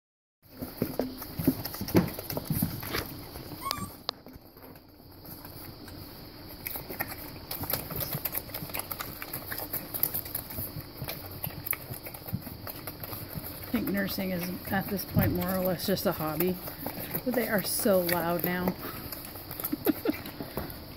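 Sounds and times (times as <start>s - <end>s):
puppies suckling: 0.5s - 20.9s.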